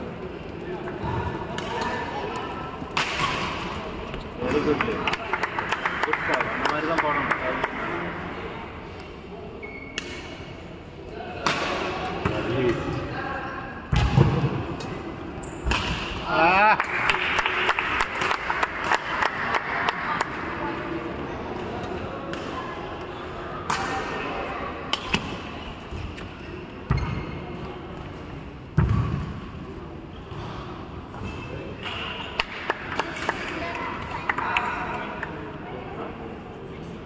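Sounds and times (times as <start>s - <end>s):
echoing murmur of voices: 0.0s - 37.0s.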